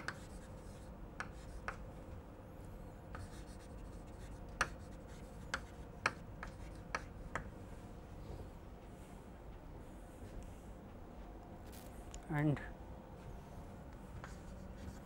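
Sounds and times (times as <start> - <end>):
chalk tapping on chalkboard: 0.0 - 0.6, 1.2 - 1.8, 3.2 - 7.5.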